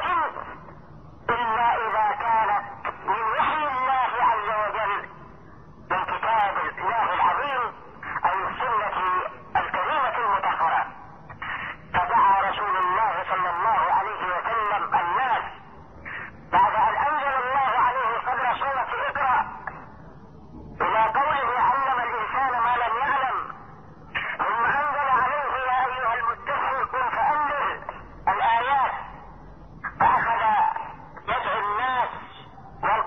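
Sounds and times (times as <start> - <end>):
man speaking over telephone: 0.0 - 0.6, 1.2 - 5.2, 5.9 - 19.9, 20.8 - 33.0.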